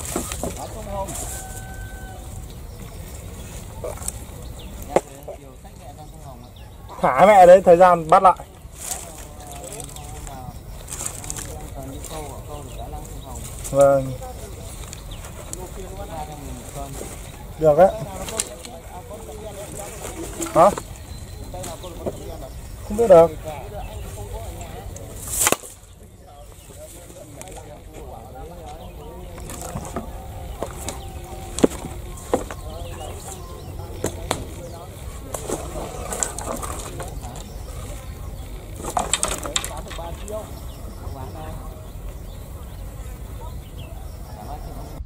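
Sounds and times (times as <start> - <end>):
faint distant voices: 0.0 - 45.0.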